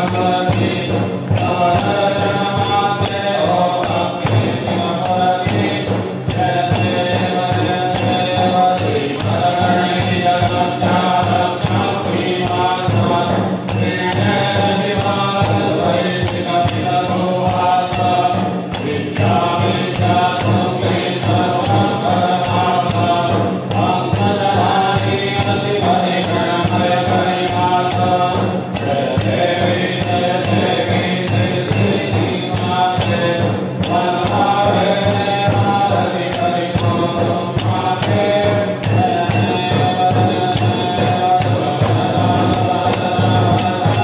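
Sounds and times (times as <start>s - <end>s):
devotional chanting with music: 0.0s - 44.0s
jingling percussion: 0.0s - 44.0s.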